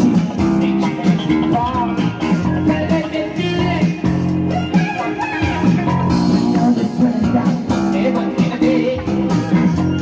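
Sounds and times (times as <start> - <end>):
guitar playing: 0.0 - 10.0
low bass guitar notes: 5.4 - 10.0.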